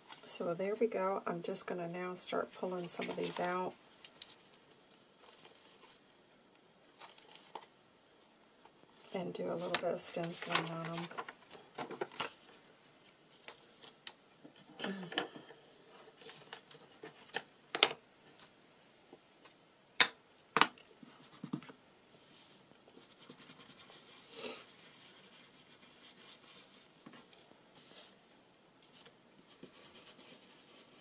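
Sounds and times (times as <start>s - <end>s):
paper and plastic rustling: 2.6s - 3.8s, 5.2s - 6.0s, 6.9s - 7.7s, 8.7s - 14.0s, 16.0s - 17.5s
brush scrubbing on paper: 22.2s - 27.0s, 29.4s - 31.0s.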